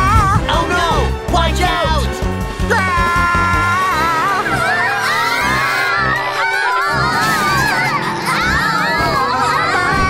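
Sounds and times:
young children crying and wailing: 0:02.6 - 0:10.0.

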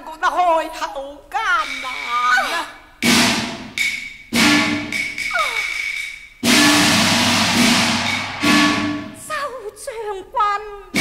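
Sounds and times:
gongs and cymbals struck: 0:03.0 - 0:09.3.

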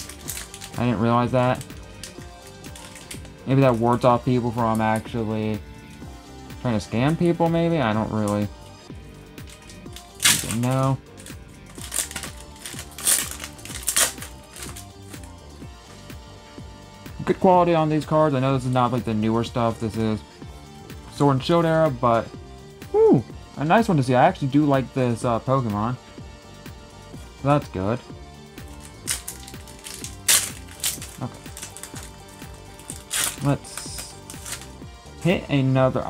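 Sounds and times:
foil wrapper crinkling: 0:00.0 - 0:05.2, 0:09.4 - 0:15.4, 0:28.6 - 0:34.8
cards being handled: 0:00.0 - 0:08.5, 0:09.1 - 0:15.6, 0:28.6 - 0:34.9
background music with steady beat: 0:00.0 - 0:36.0.

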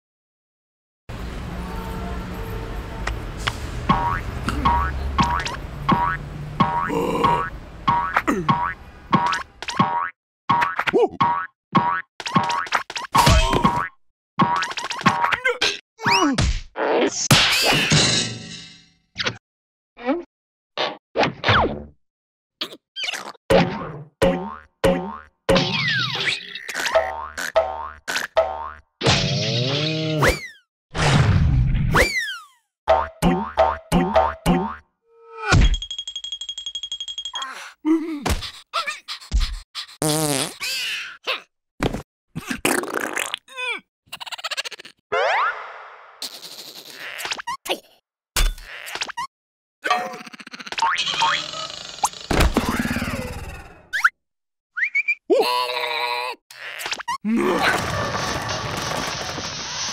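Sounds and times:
cartoon spring boings: 0:49.8 - 0:54.1.

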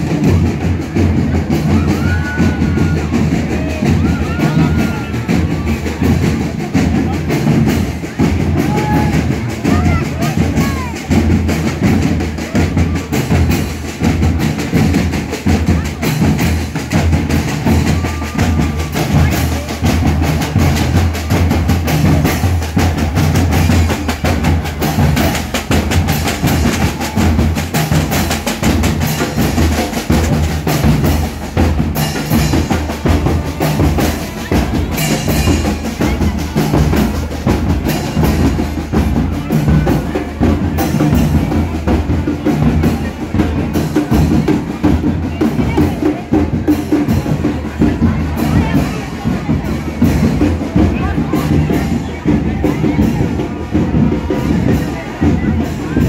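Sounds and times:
deep bass drums: 0:00.0 - 0:56.0
rattling snare drums: 0:00.0 - 0:56.0
voices: 0:00.0 - 0:56.0.

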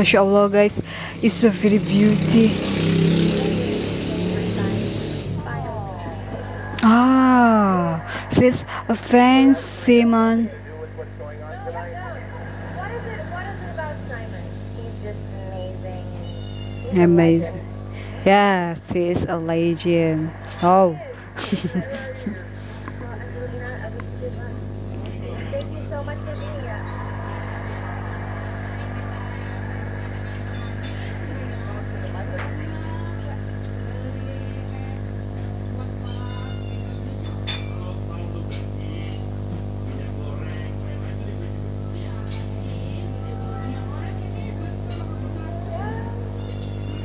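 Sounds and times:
noisy crowd haze: 0:00.0 - 0:37.2
low buzzing hum: 0:00.0 - 0:47.0.

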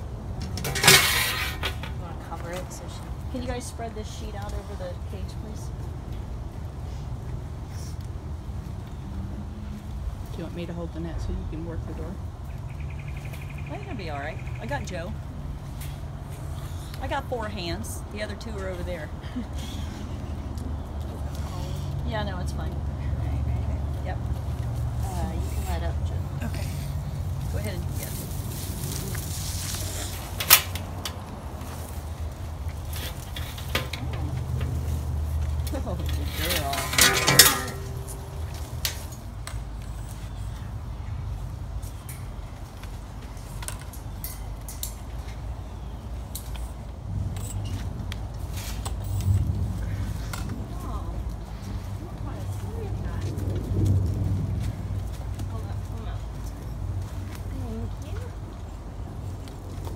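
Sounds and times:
steady low rumble: 0:00.0 - 0:59.9
metal clinks and rattles: 0:00.3 - 0:02.0, 0:32.9 - 0:39.6
metal clatter: 0:00.3 - 0:02.2, 0:32.9 - 0:35.1, 0:35.7 - 0:39.5.

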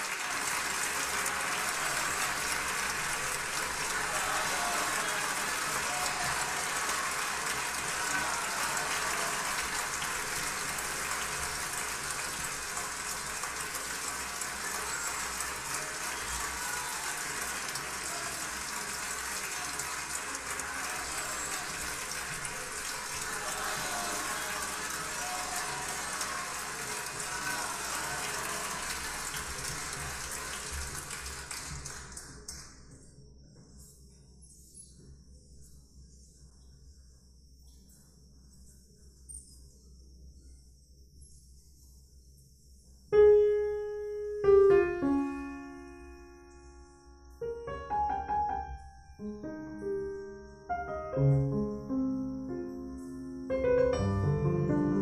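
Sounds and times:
crowd voices: 0:00.0 - 0:30.5
audience applauding: 0:00.0 - 0:32.8.

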